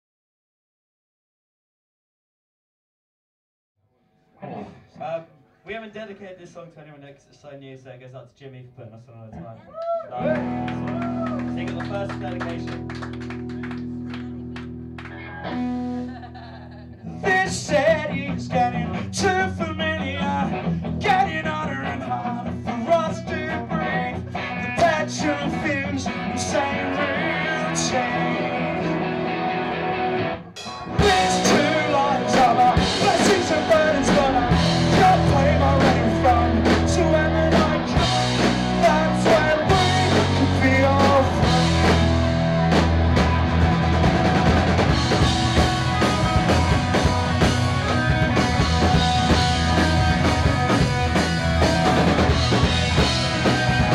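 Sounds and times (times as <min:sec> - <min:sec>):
bass guitar: 0:04.4 - 0:05.2, 0:10.0 - 0:53.9
electric guitar: 0:10.0 - 0:53.9
person singing: 0:17.2 - 0:29.3, 0:30.9 - 0:42.1
drum kit: 0:30.4 - 0:53.9.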